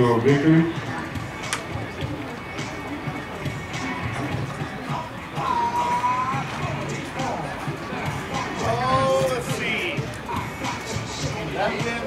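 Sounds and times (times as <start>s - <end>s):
murmur of voices: 0.0s - 12.0s
music over loudspeakers: 0.0s - 12.0s.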